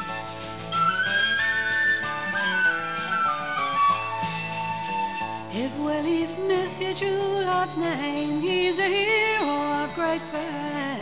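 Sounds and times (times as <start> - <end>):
flute melody: 0.0 - 6.8
plucked acoustic guitar: 0.0 - 11.0.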